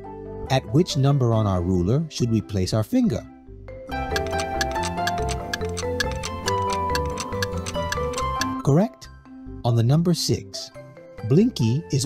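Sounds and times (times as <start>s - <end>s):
light background music: 0.0s - 12.0s
clock-like ticking: 4.0s - 8.6s.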